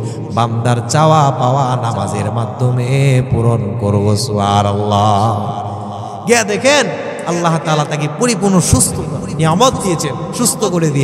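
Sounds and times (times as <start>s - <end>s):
man chanting: 0.0s - 11.0s.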